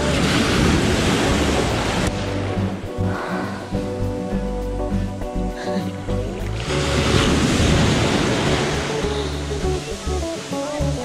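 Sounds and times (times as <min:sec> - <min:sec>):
small waves breaking and splashing: 0:00.0 - 0:03.8, 0:06.4 - 0:11.0.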